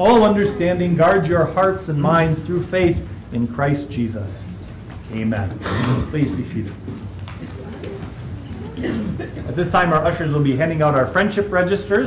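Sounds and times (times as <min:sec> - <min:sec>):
faint low murmurs: 0:00.0 - 0:12.0
shuffling and rustling: 0:00.2 - 0:11.4.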